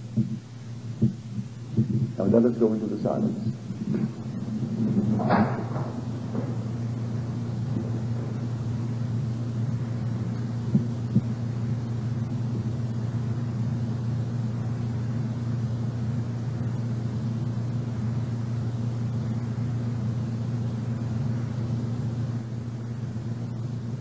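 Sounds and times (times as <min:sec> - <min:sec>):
low hum: 0:00.0 - 0:24.0.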